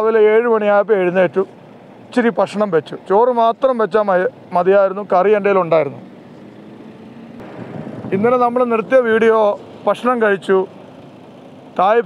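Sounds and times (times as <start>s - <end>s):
truck engine and tyre noise: 0.0s - 12.0s.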